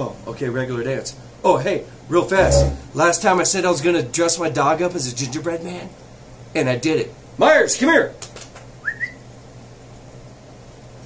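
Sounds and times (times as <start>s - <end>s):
rising call whistle: 8.8s - 9.2s.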